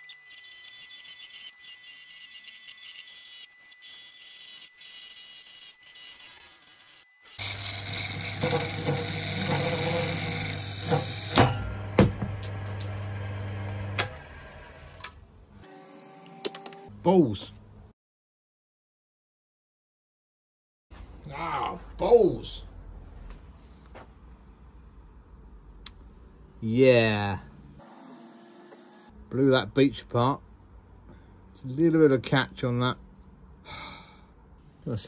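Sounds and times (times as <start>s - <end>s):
tool cutting spinning wood: 0.0s - 14.9s
wood lathe motor hum: 0.0s - 15.0s.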